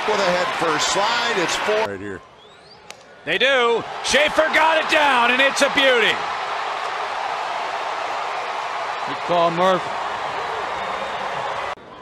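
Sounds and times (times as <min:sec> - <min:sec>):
crowd cheering: 0:00.0 - 0:01.9, 0:03.4 - 0:12.0.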